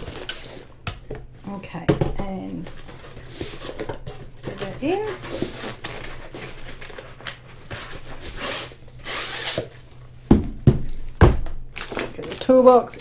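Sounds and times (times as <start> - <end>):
plastic rustling and crinkling: 0.0 - 10.2, 10.9 - 13.0.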